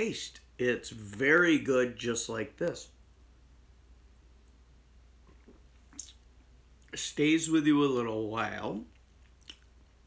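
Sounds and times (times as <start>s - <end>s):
sharp mouth sound: 5.9s - 6.2s.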